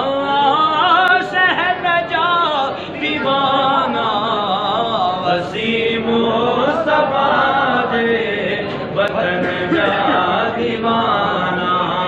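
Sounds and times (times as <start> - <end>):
men chanting devotional refrain: 0.0 - 12.0.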